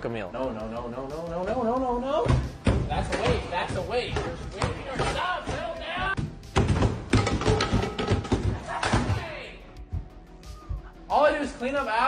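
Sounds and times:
knocks and thuds: 2.2s - 9.3s.

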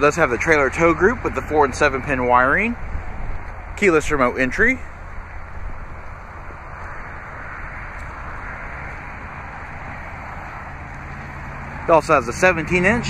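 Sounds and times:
low rumble and hum: 0.0s - 13.0s.

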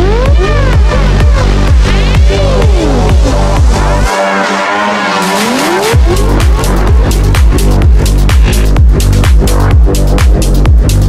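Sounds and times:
gliding synth tone bending: 0.0s - 9.9s
hi-hats ticking: 5.3s - 11.0s.

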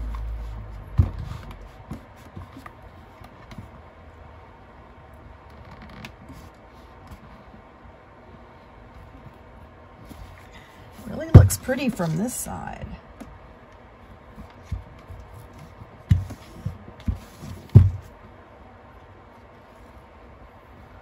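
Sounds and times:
knock: 17.6s - 18.1s.

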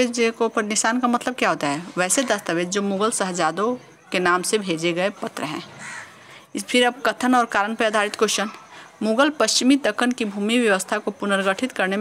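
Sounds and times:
woman speaking: 0.0s - 5.8s, 6.4s - 12.0s.

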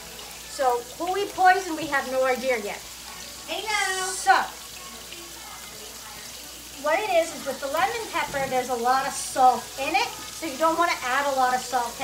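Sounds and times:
food sizzling in hot fat: 0.0s - 12.0s.

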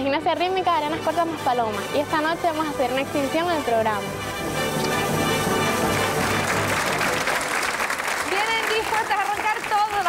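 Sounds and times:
music: 0.0s - 10.0s
audience applauding: 5.7s - 10.0s.

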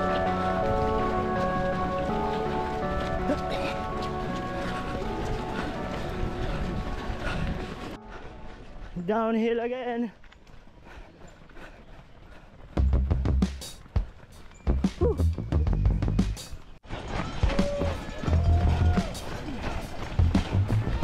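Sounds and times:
running footfalls thumping: 0.0s - 8.6s, 10.2s - 21.0s
background music with held notes: 0.0s - 8.9s.

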